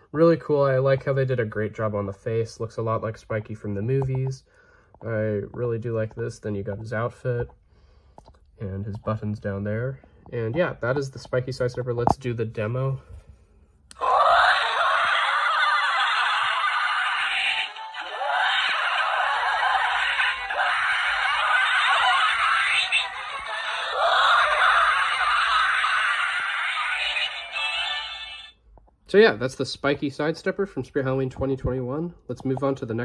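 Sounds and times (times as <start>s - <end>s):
toy music through small speaker: 14.0s - 28.6s.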